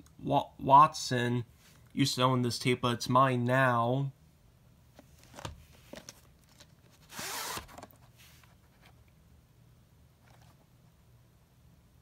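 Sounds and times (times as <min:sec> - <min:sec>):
cassette scraping against box: 0:06.9 - 0:08.1.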